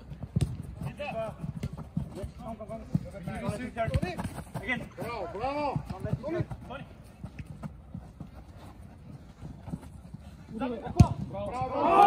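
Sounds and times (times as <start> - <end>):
running footsteps on artificial turf: 0.0 - 11.8.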